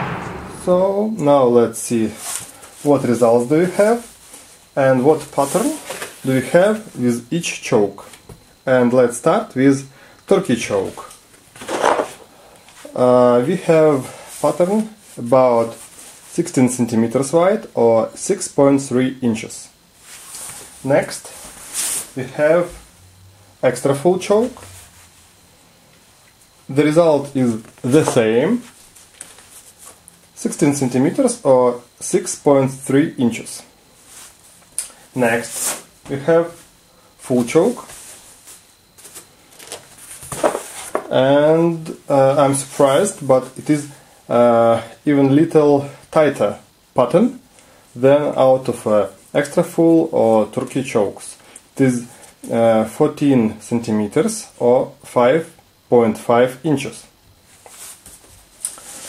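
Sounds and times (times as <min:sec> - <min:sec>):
man breathing: 0:09.9 - 0:10.2
cardboard rustling scrape: 0:11.6 - 0:12.2, 0:39.0 - 0:41.1.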